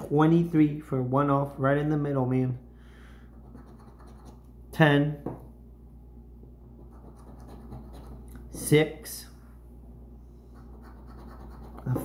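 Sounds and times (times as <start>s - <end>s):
coin scratching ticket: 3.4s - 4.4s, 6.9s - 8.2s, 10.6s - 12.0s.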